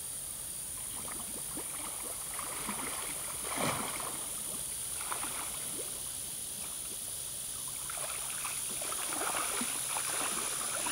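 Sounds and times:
steady high hiss: 0.0s - 10.9s
lake water sloshing and lapping: 0.8s - 7.0s, 7.7s - 10.9s
small water splashes: 0.8s - 10.9s.

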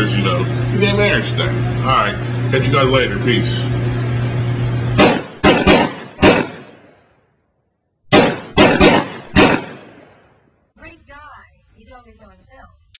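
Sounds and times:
sharp echoing impact hits: 5.0s - 7.2s, 8.1s - 10.4s.

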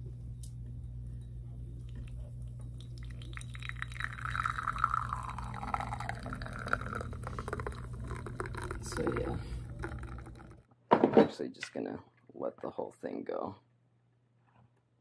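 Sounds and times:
espresso streaming into a glass: 1.9s - 10.7s.

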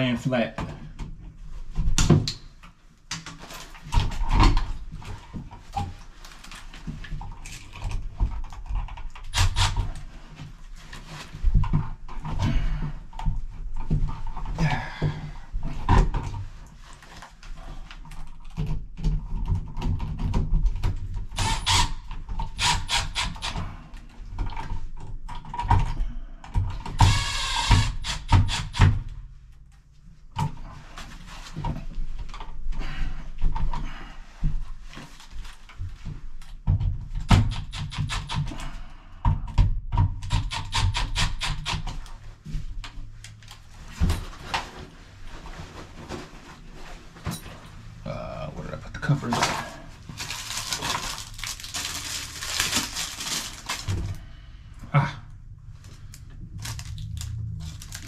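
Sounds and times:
plastic and metal knocks and clicks: 18.3s - 21.5s.

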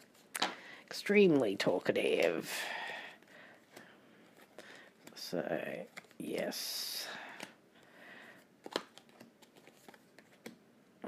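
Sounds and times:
cards clicking and tapping: 3.1s - 6.6s, 8.6s - 10.6s.

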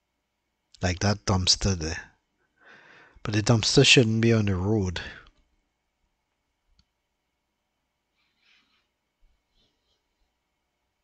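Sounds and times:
man speaking voiceover: 0.8s - 2.1s, 3.2s - 5.2s
faint click: 6.3s - 7.0s.

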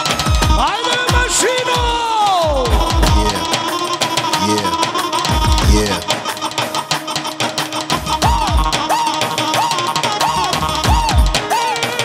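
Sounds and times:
live dance band music: 0.0s - 12.0s.

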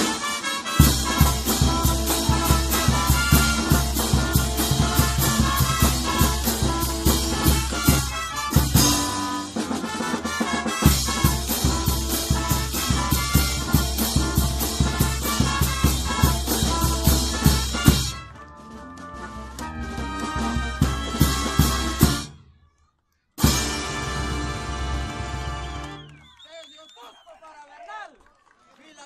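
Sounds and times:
brass band playing: 0.0s - 22.5s, 23.4s - 26.2s
bass drum beat: 0.8s - 18.2s, 19.6s - 22.3s.

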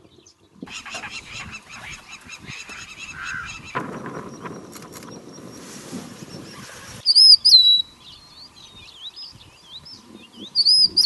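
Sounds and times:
flock of birds calling: 0.0s - 11.0s.

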